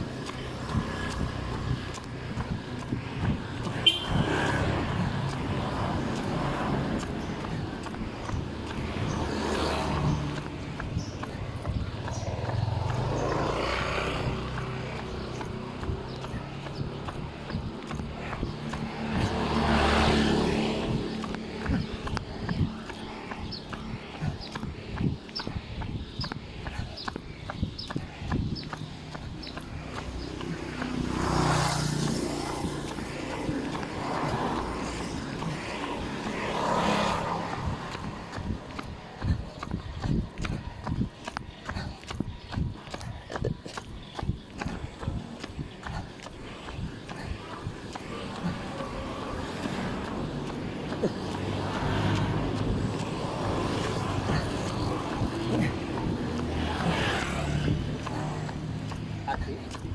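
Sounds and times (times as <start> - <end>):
outdoor noise: 0.0 - 59.9.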